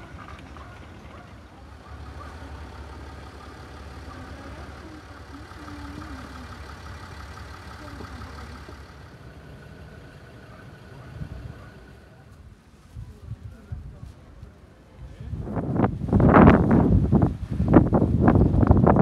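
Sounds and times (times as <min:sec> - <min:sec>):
engine idling: 0:00.0 - 0:12.4.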